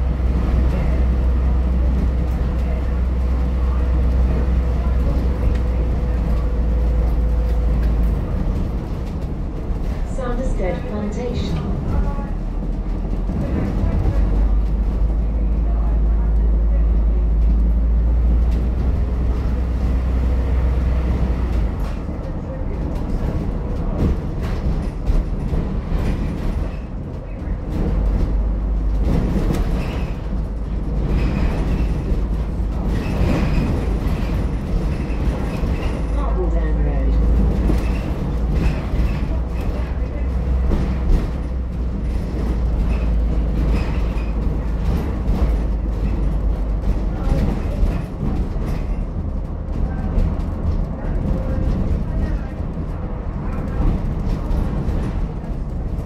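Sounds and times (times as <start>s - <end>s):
bus interior low rumble: 0.0s - 56.0s.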